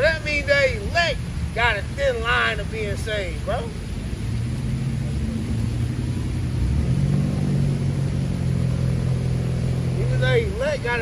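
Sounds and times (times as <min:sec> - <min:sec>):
vehicle engine accelerating: 0:00.0 - 0:11.0.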